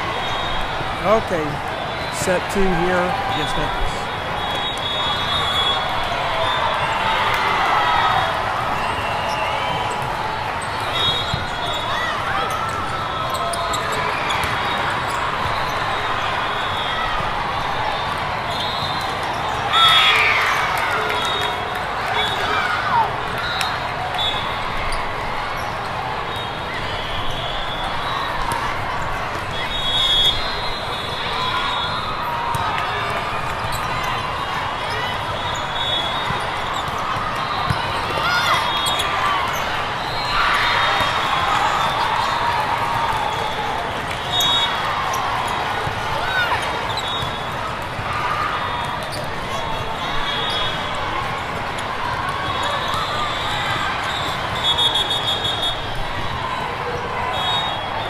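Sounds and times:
many voices chattering and calling: 0:00.0 - 0:58.0.

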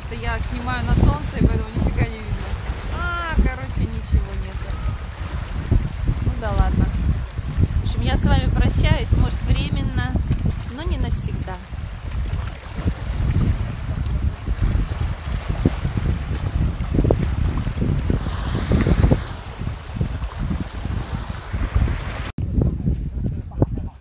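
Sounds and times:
waves washing on rocky shore: 0:00.0 - 0:22.3
wind buffeting microphone: 0:00.0 - 0:24.0.

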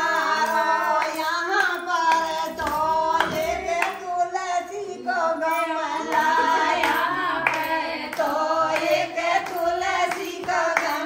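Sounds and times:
sharp percussive beats: 0:00.0 - 0:04.2
person singing: 0:00.0 - 0:11.0.

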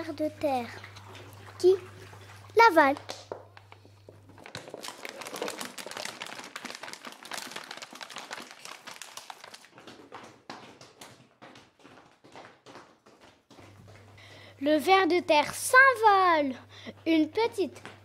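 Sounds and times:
crackling and rustling clicks: 0:02.9 - 0:11.2.

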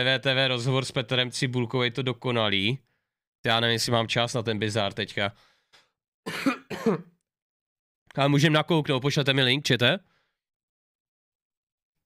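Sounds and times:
man clearing his throat: 0:06.3 - 0:07.2.

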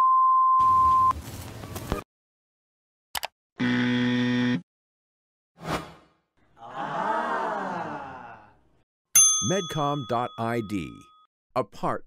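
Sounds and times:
low electronic error buzzer: 0:03.6 - 0:04.6.

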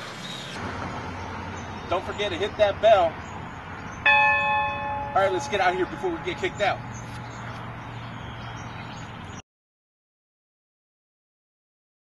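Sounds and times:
large bell ringing: 0:04.1 - 0:07.4.

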